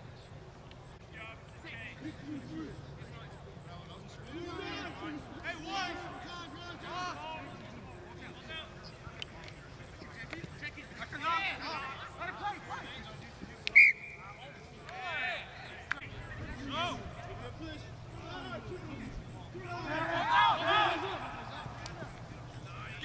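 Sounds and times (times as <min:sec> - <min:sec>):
players shouting: 0:01.1 - 0:23.0
referee's whistle blast: 0:13.7 - 0:14.4.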